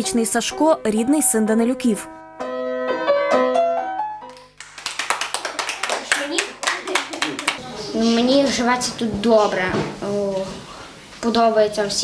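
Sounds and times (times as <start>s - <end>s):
upright piano notes: 0.0s - 4.6s.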